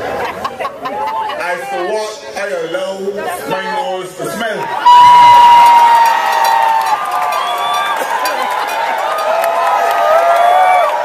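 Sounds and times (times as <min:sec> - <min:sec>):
crowd cheering: 0:04.6 - 0:11.0.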